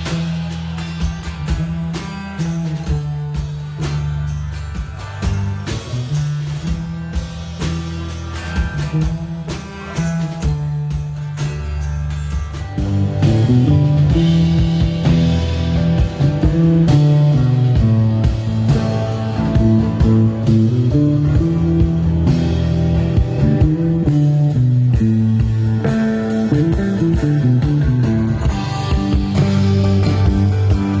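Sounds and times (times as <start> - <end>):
rock band playing: 0.0 - 31.0
steady drum beat: 0.0 - 31.0
walking bass line: 0.0 - 31.0.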